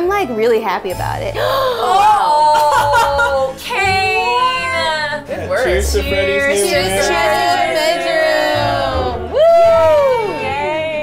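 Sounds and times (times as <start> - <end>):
women exclaiming ooh: 1.5 - 3.6, 9.3 - 11.0.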